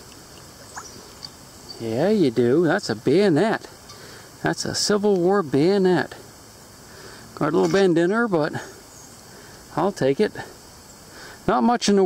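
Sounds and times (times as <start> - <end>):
water trickling and dripping: 0.0 - 1.8
stream flowing: 0.0 - 6.0.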